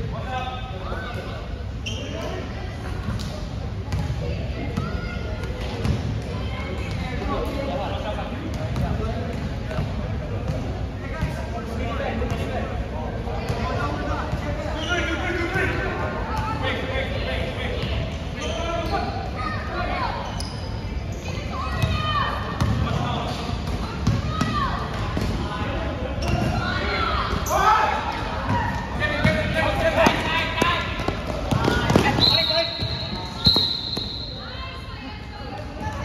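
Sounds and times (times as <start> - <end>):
sneaker squeaks: 1.8 - 3.3, 14.4 - 15.3, 17.8 - 24.7, 26.1 - 34.8
referee's whistle blasts: 32.1 - 34.5.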